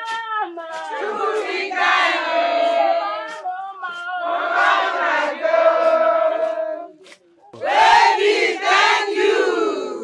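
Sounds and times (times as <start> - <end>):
women chanting and singing: 0.0 - 10.0.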